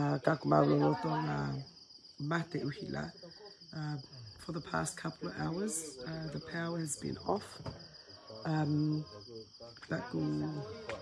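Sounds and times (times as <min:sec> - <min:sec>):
woman speaking: 0:00.0 - 0:07.7, 0:08.5 - 0:09.1, 0:09.8 - 0:10.8
crickets chirping: 0:00.0 - 0:11.0.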